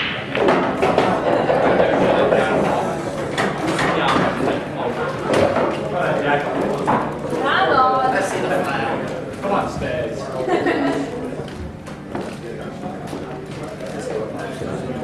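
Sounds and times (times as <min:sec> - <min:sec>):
indistinct talking in a hall: 0:00.0 - 0:15.0.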